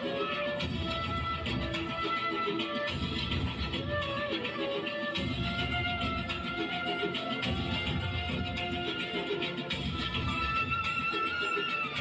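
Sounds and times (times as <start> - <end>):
steady drum rhythm: 0.0 - 12.0.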